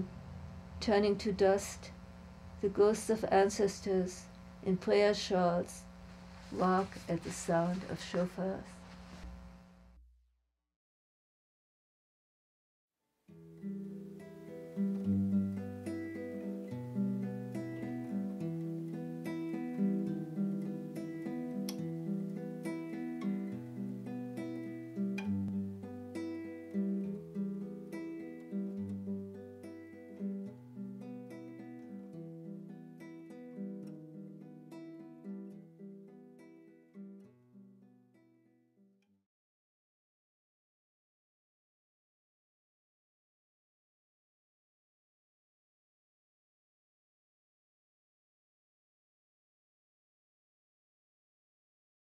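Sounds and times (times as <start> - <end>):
solo acoustic guitar: 13.3 - 38.8.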